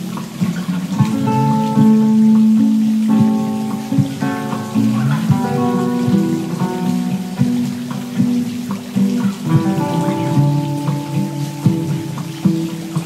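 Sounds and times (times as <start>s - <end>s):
acoustic guitar arpeggios: 0.0s - 13.0s.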